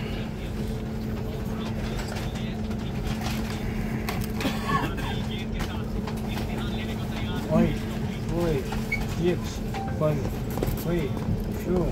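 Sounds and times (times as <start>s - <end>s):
electric train humming: 0.0s - 11.8s.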